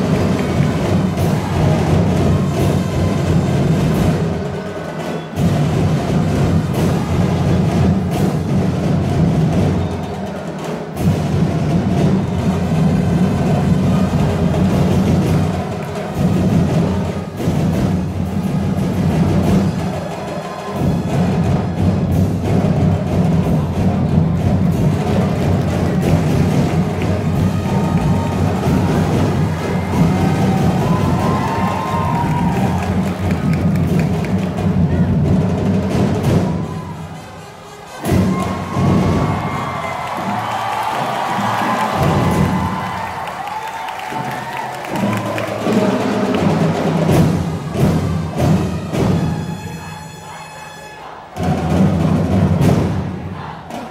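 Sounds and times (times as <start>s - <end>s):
drum-led dance music: 0.0s - 49.8s
crowd cheering and shouting: 0.0s - 53.9s.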